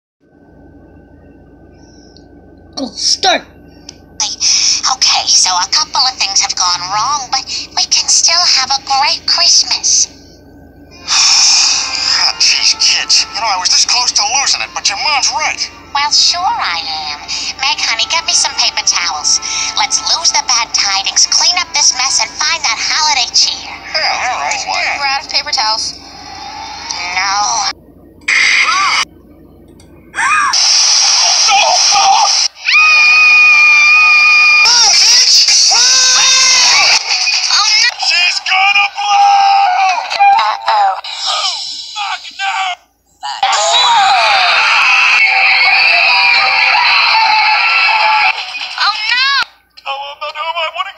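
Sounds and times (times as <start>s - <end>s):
high-pitched cartoon voices: 10.9s - 50.9s.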